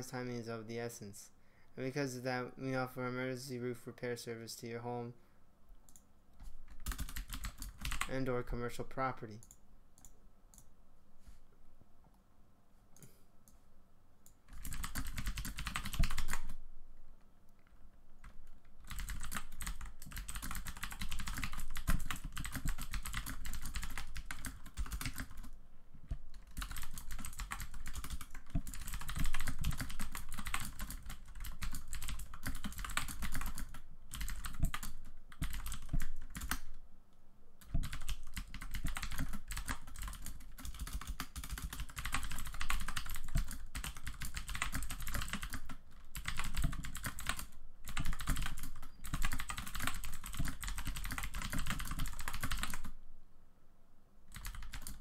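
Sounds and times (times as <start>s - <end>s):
computer keyboard typing: 5.9s - 8.4s, 14.2s - 16.6s, 18.2s - 36.8s, 37.6s - 53.0s, 54.3s - 55.0s.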